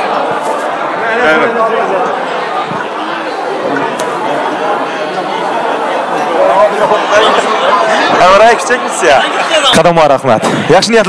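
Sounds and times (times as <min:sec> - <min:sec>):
crowd of guests chattering: 0:00.0 - 0:11.0.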